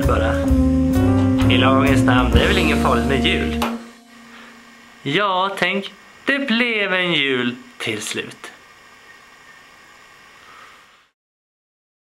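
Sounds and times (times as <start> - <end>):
faint room noise and hiss: 1.5 - 11.2.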